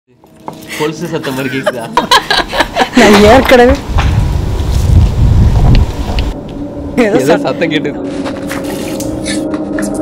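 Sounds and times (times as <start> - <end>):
wind buffeting microphone: 2.9 - 7.1.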